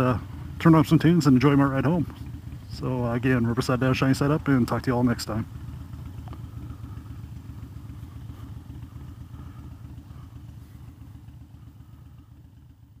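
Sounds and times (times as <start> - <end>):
motorcycle engine idling: 0.0 - 13.0.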